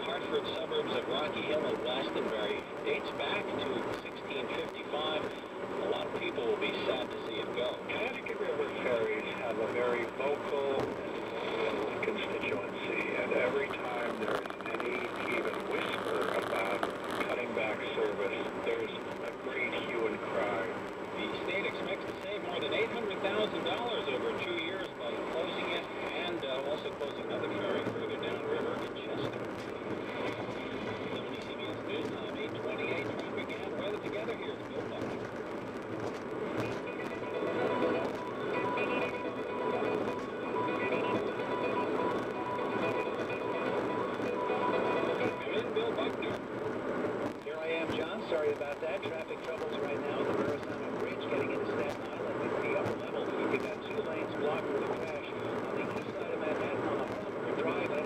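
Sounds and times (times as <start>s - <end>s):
car radio music: 0.0s - 58.0s
voices on radio: 0.0s - 58.0s.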